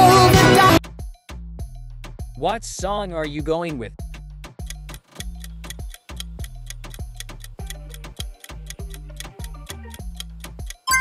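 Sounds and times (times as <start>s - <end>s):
light background music with bass: 0.0s - 11.0s
fast even ticking: 4.6s - 11.0s.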